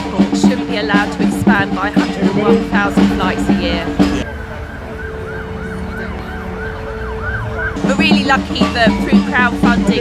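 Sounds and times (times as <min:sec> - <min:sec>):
siren yelping: 0:04.1 - 0:08.2.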